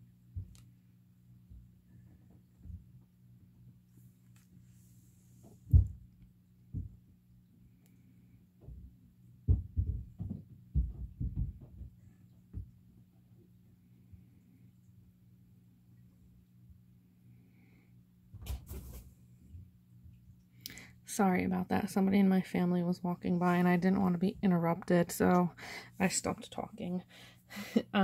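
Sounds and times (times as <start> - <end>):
faint low hum: 0.0 - 28.0
muffled low thumps: 5.7 - 7.1, 8.6 - 12.8.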